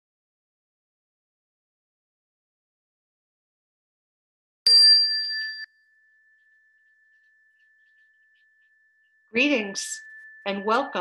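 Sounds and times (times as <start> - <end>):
small bell ringing: 4.7 - 11.0.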